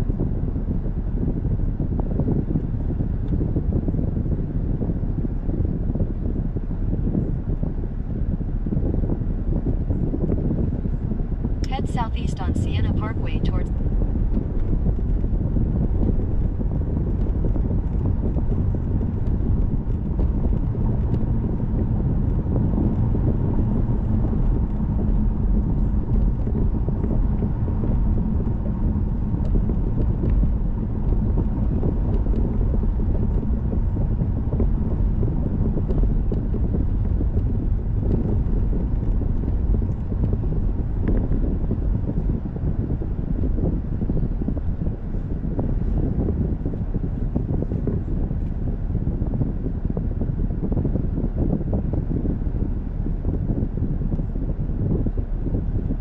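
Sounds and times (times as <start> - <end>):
car interior road rumble: 0.0 - 56.0.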